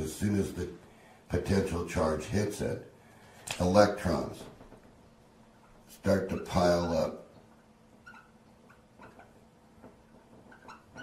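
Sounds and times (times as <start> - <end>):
marker squeaking on whiteboard: 5.6 - 7.1, 7.9 - 11.0.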